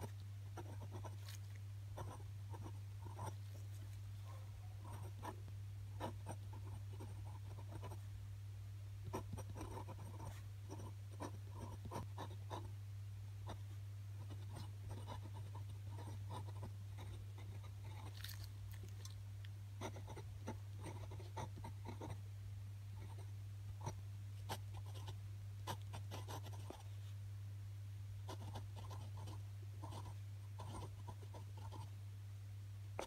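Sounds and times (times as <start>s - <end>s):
pen scratching on paper: 0.0s - 1.4s, 2.0s - 3.5s, 4.8s - 5.4s, 6.0s - 8.0s, 9.1s - 12.7s, 14.2s - 18.2s, 19.8s - 22.2s, 23.0s - 26.8s, 28.3s - 31.9s
steady low hum: 0.0s - 33.0s.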